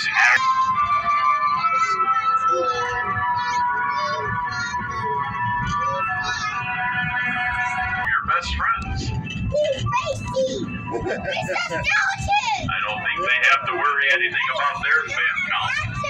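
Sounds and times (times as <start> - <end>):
music of long held notes: 0.4 - 8.2.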